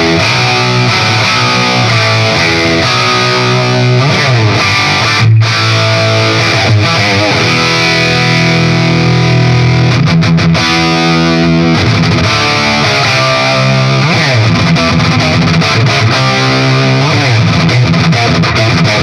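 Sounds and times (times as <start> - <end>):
distorted electric guitar: 0.0 - 19.0.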